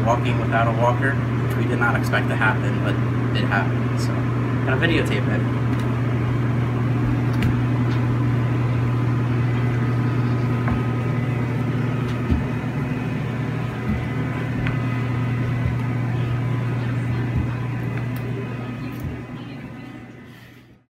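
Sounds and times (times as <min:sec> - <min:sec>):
low mechanical hum: 0:00.0 - 0:20.9
footsteps on floor: 0:10.4 - 0:20.0.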